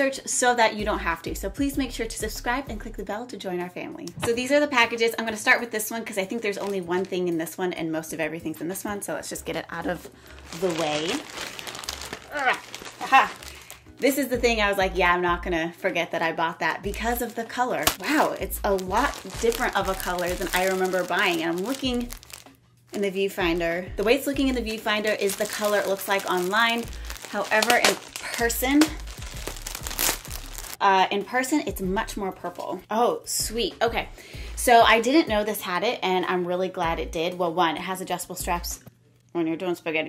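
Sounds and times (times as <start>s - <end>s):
plastic bag crinkling: 9.8s - 14.4s, 16.9s - 30.8s.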